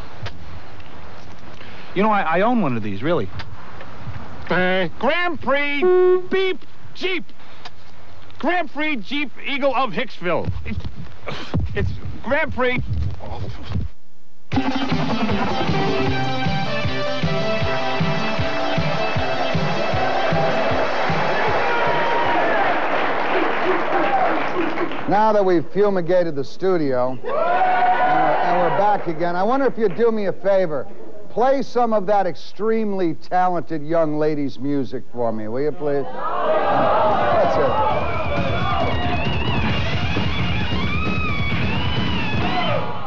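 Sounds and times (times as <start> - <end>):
electric guitar sliding: 5.8 - 6.5
theme music with drum beat: 14.5 - 22.0, 37.5 - 42.9
audience clapping: 18.9 - 25.5.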